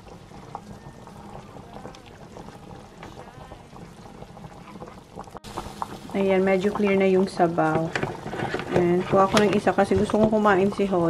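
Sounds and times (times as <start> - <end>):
broth bubbling in a pot: 0.0 - 11.0.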